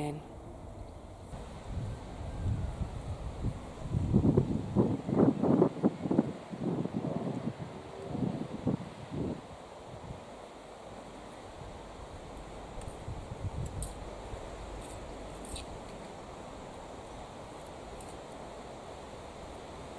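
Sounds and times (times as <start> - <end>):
wind buffeting microphone: 1.3 - 10.3, 12.0 - 15.3.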